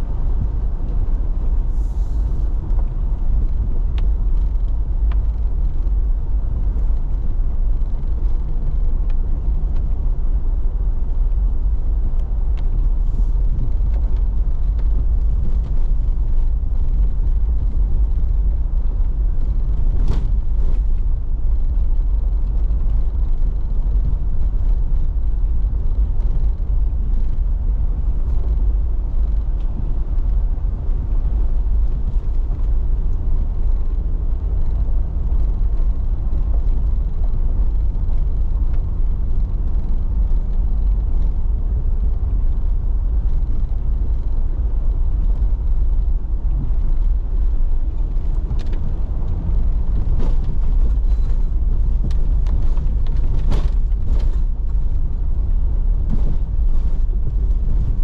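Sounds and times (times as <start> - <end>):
vehicle engine and tyres rumbling: 0.0 - 58.0.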